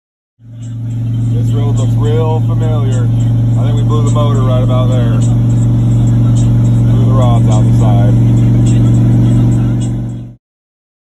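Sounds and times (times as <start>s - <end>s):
engine and exhaust drone: 0.4s - 10.4s.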